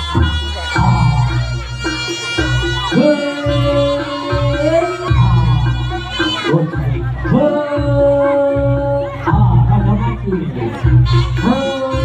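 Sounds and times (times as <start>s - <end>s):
ensemble music with drums: 0.0s - 12.0s.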